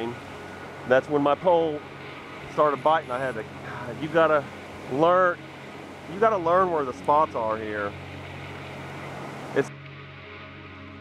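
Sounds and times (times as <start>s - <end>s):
low steady hum: 0.0s - 11.0s
river water over rapids: 0.0s - 11.0s.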